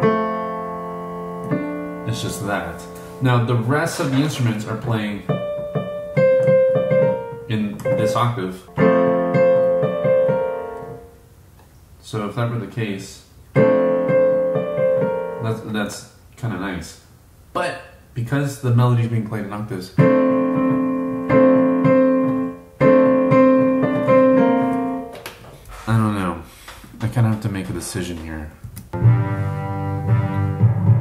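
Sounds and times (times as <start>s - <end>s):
digital piano chords: 0.0s - 11.2s, 13.5s - 15.8s, 20.0s - 25.2s, 28.9s - 31.0s.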